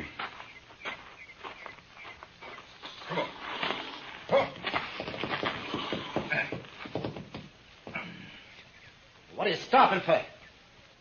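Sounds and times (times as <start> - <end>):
horse hooves clattering: 0.0 - 8.1
man urging horses: 4.3 - 4.6, 9.3 - 10.4.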